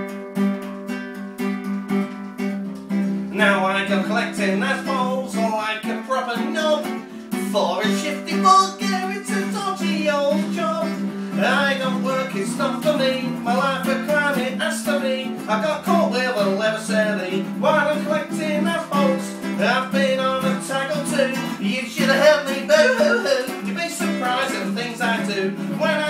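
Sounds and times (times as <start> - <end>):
strummed acoustic guitar: 0.0 - 26.0
man singing: 3.3 - 26.0.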